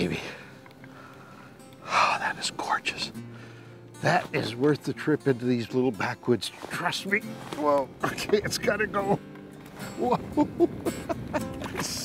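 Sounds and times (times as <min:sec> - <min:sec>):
faint music: 0:00.0 - 0:12.0
man whispering breathily: 0:01.8 - 0:03.1.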